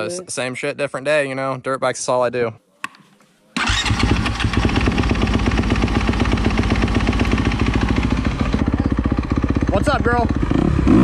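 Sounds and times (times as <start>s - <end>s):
dirt bike engine idling: 3.6s - 11.0s.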